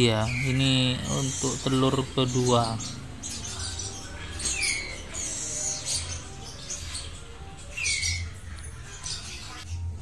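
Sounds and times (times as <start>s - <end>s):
birds chirping: 0.0s - 10.0s
faint background music: 0.0s - 10.0s.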